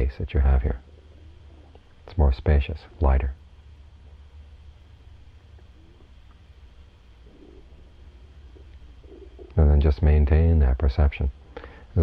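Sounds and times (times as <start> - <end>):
low room tone hum: 0.0 - 12.0
dove cooing: 0.7 - 2.0, 5.4 - 6.4, 7.1 - 9.6.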